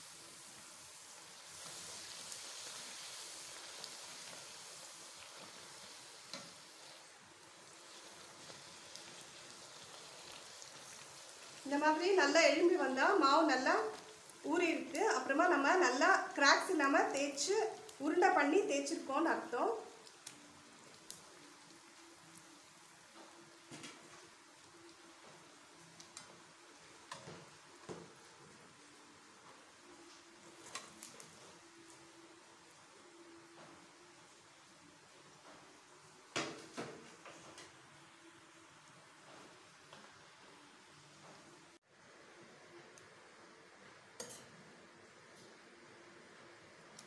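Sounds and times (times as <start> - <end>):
dough sizzling in hot oil: 0.0 - 47.0.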